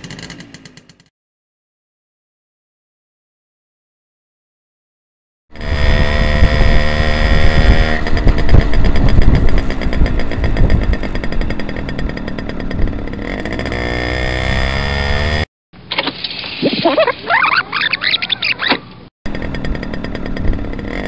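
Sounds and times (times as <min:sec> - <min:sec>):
two-stroke moped engine running: 0:00.0 - 0:01.1, 0:05.5 - 0:15.5, 0:19.3 - 0:21.0.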